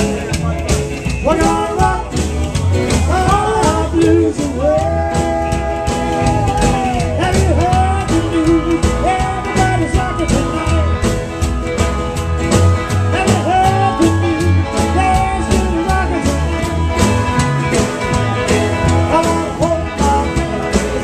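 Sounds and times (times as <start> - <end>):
acoustic guitar: 0.0 - 21.0
electric guitar: 0.0 - 21.0
upright double bass: 0.0 - 21.0.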